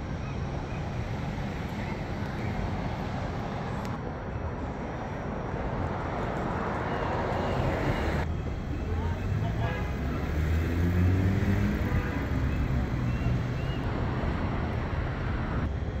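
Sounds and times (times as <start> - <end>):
low rumble of traffic: 0.0 - 16.0
faint voices of passers-by: 1.4 - 16.0
vehicle engine passing: 9.1 - 15.7.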